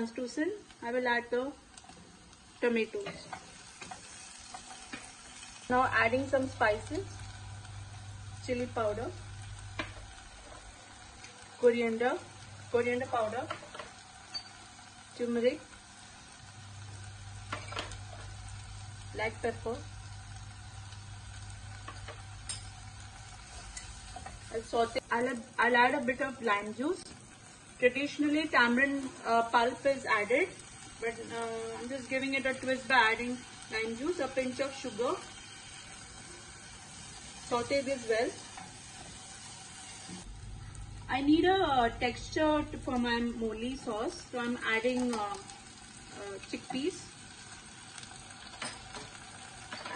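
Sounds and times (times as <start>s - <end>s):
food sizzling in a saucepan: 0.0s - 49.9s.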